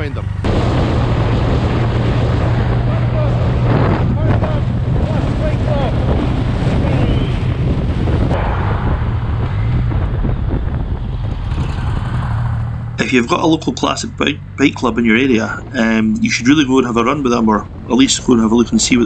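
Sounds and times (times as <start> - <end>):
motorcycle engine humming: 0.0 - 19.0
wind rush on microphone: 0.0 - 19.0.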